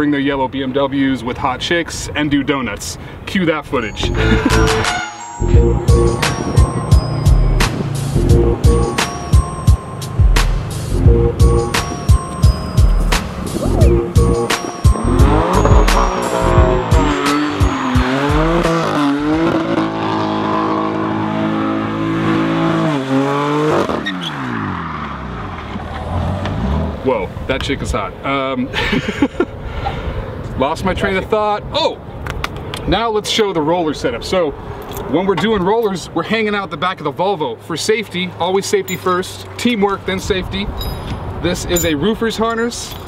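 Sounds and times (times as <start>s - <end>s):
music with steady beat: 4.1s - 19.6s
car engine revving: 5.5s - 27.1s.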